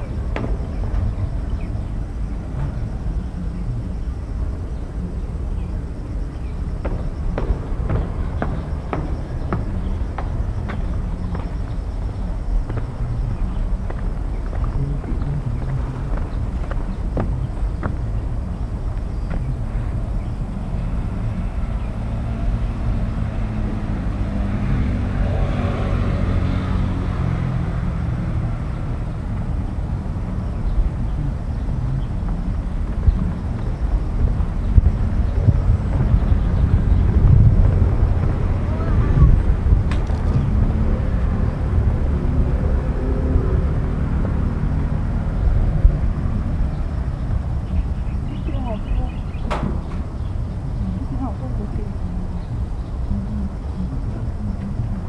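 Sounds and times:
faint indistinct voices: 0.0s - 24.8s, 29.2s - 44.9s, 45.5s - 55.0s
steady low rumble: 0.0s - 55.0s.

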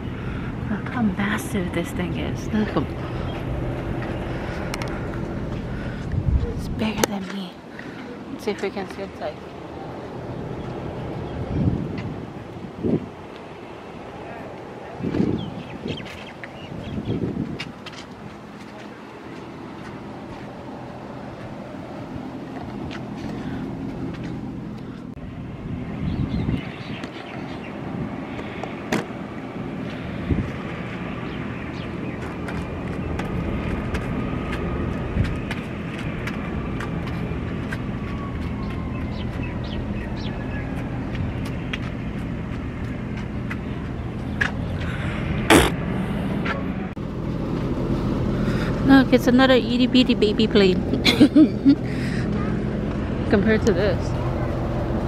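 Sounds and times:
engine running: 0.0s - 12.6s, 17.3s - 55.0s.

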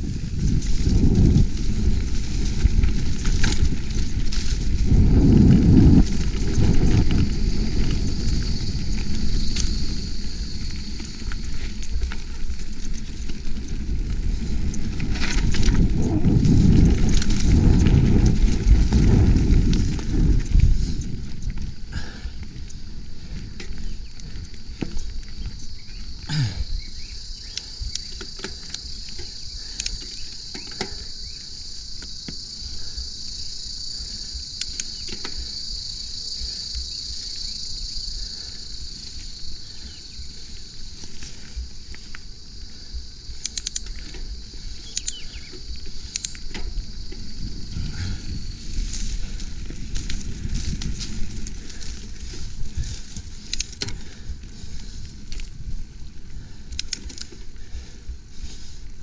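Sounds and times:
bike clicking and rattling: 0.0s - 59.0s
high insect drone: 0.0s - 59.0s
tyres and wind rumble: 0.0s - 59.0s.

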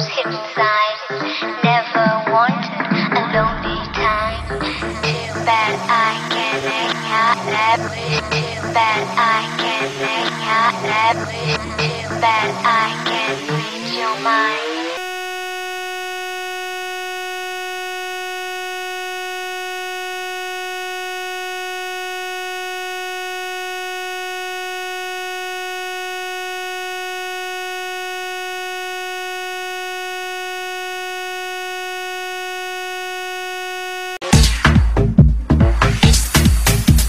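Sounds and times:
rising sweeping music: 2.6s - 15.0s
electronic buzzing tone: 3.1s - 34.3s.

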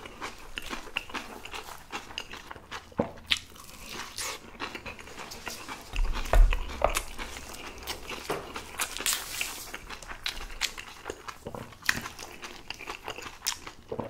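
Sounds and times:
chewing and biting: 0.0s - 14.0s.

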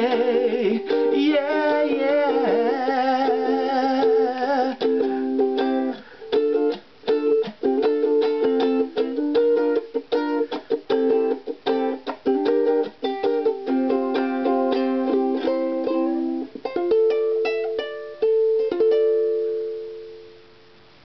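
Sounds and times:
ukulele strummed in reggae rhythm: 0.0s - 21.0s.

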